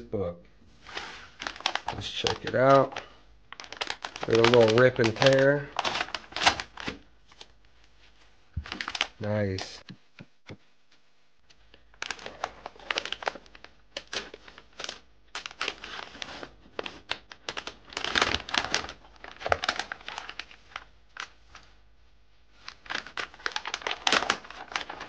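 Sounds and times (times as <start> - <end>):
plastic bag crinkling: 0.8 - 7.5, 8.6 - 9.8, 11.9 - 21.6, 22.6 - 25.0.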